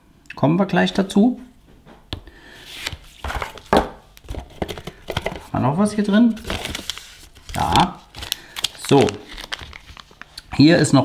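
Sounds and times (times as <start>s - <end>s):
plastic rustle: 6.3s - 10.4s.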